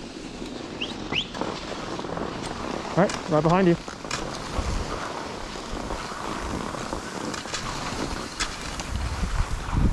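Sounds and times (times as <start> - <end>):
skis sliding over snow: 0.0 - 9.9.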